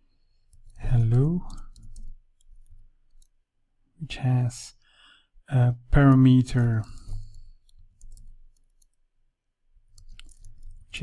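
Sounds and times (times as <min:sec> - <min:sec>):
keyboard keys clicking: 0:00.5 - 0:03.4, 0:06.0 - 0:09.0, 0:09.9 - 0:11.0.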